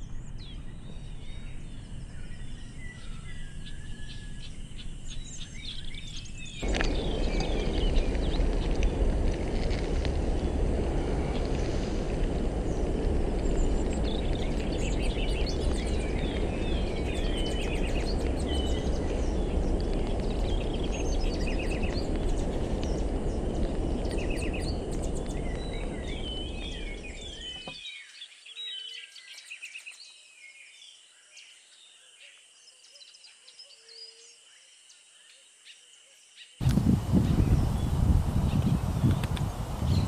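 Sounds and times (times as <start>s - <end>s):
small birds chirping: 0.0s - 30.6s, 36.6s - 40.0s
loud low rumble: 6.6s - 27.6s.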